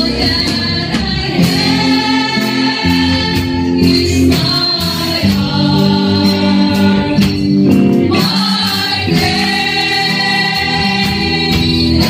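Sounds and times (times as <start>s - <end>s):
woman singing through microphone: 0.0s - 7.4s, 8.1s - 12.0s
band accompaniment: 0.0s - 12.0s
congregation singing along: 0.0s - 12.0s.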